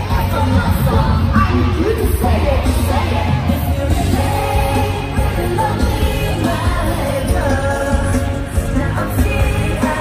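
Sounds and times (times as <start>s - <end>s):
backing band with pulsing beat: 0.0s - 10.0s
girl group singing live: 0.0s - 10.0s.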